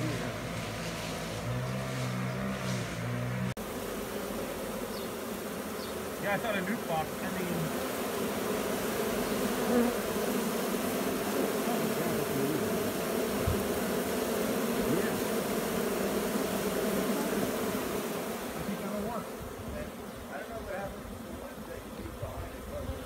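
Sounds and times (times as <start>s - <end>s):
honeybees buzzing: 0.0s - 23.0s.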